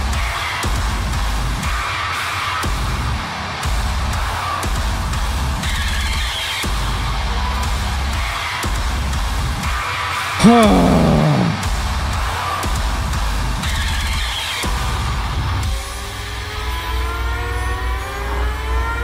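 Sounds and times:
man sighing: 10.4s - 11.7s.

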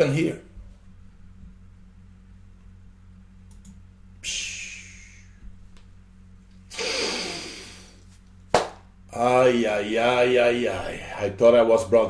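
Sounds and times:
steady low hum: 0.0s - 12.0s
faint clicks: 3.5s - 3.8s
man blowing out a hissing sigh: 4.2s - 5.4s, 6.7s - 8.0s.

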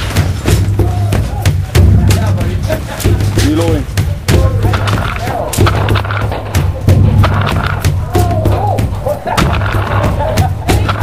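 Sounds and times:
balls striking wood: 0.0s - 11.0s
distant shouting: 0.0s - 11.0s
paintball guns firing: 4.4s - 11.0s.

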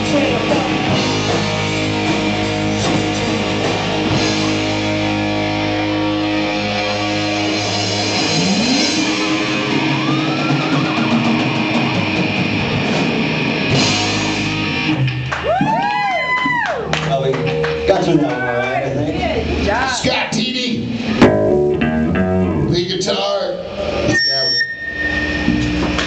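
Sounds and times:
electric guitar note bending: 0.0s - 15.3s, 16.9s - 19.7s, 20.8s - 26.0s
hard rock band playing: 0.0s - 24.2s.

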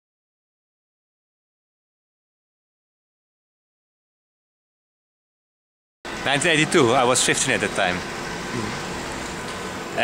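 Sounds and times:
distant traffic hum: 6.1s - 10.0s.

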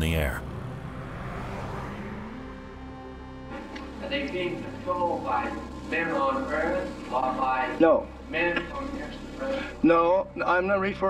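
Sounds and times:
car passing: 0.0s - 5.0s
soft background music: 0.0s - 11.0s
steady low drone: 0.0s - 11.0s.

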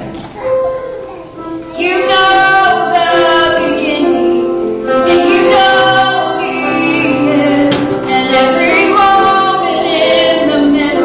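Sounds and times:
grand piano: 0.0s - 11.0s
woman singing into microphone: 1.7s - 11.0s.

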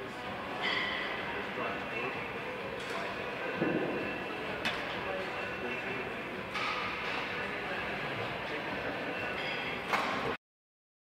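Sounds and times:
steady background noise: 0.0s - 10.4s.

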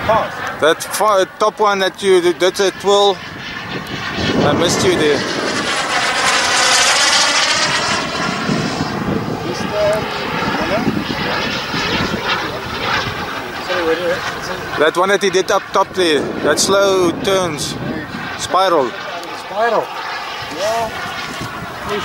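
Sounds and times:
model jet turbine whine: 0.0s - 22.0s.

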